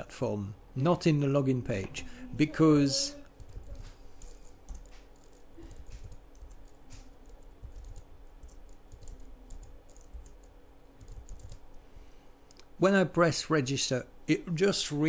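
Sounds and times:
typing on computer keyboard: 0:03.4 - 0:11.6.

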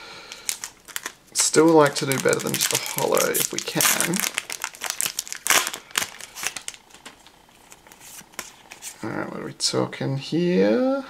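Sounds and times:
foil wrapper crinkling: 0:00.3 - 0:09.0.

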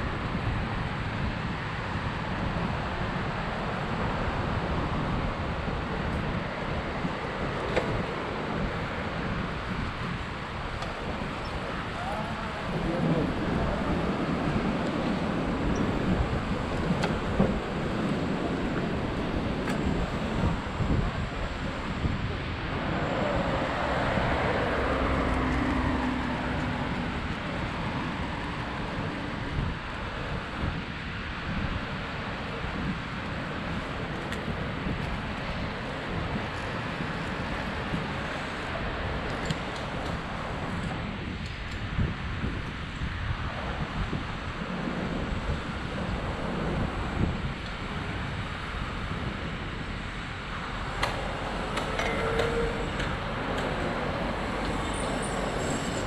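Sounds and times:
road traffic passing: 0:00.0 - 0:56.0
wind rushing over microphone: 0:00.0 - 0:56.0
loud vehicle passing: 0:11.8 - 0:29.8.

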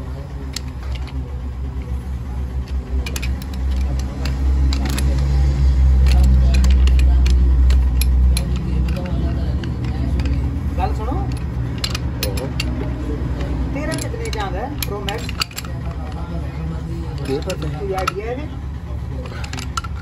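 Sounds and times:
low engine rumble: 0:00.0 - 0:20.0
metallic clicks and taps: 0:02.6 - 0:10.6, 0:11.2 - 0:16.3.

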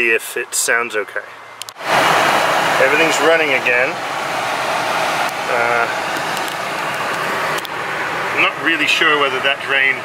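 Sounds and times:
car engine idling: 0:00.0 - 0:10.0
air conditioning blower rushing: 0:01.8 - 0:10.0.

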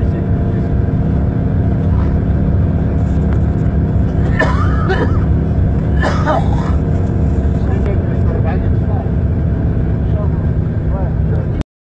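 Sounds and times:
vehicle driving on snow: 0:00.0 - 0:11.6.

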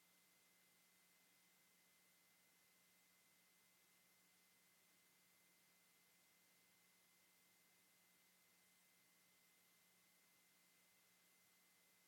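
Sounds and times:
faint steady hiss: 0:00.0 - 0:12.0
faint steady hum: 0:00.0 - 0:12.0.

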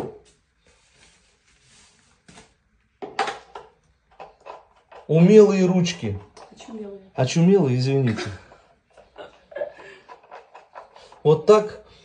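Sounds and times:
wooden parts clicking and knocking: 0:03.0 - 0:06.6, 0:08.4 - 0:11.6.

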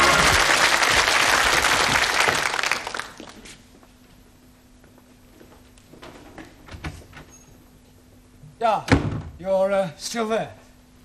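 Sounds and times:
door closing thud: 0:08.9 - 0:09.4.

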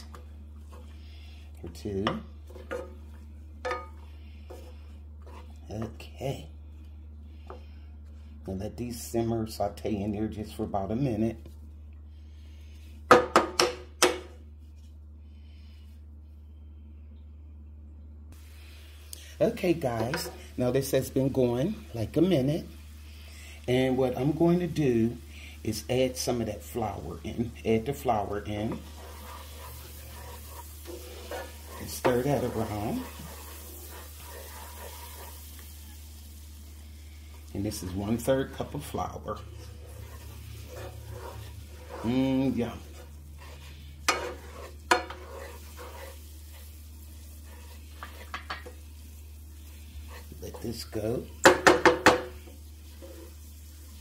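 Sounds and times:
wooden spoon scraping skillet: 0:00.0 - 0:06.1, 0:19.3 - 0:36.1, 0:37.1 - 0:54.0
low steady hum: 0:00.0 - 0:54.0.

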